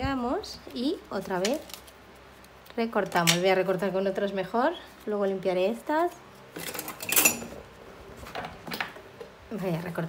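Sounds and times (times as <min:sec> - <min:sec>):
metal scissors clattering on table: 0:06.6 - 0:07.5.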